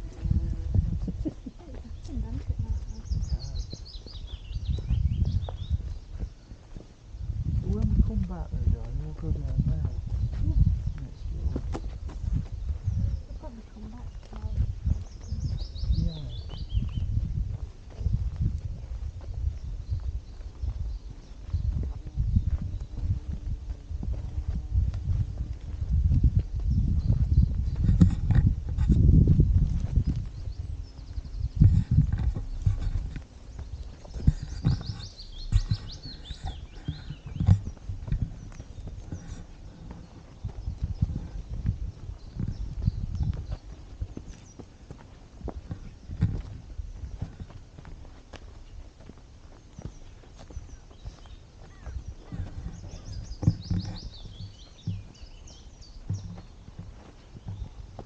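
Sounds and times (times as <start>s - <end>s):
heavy low rumble: 0.0s - 5.9s, 7.1s - 43.6s
footsteps on dirt path: 0.0s - 58.0s
songbird trill: 0.0s - 58.0s.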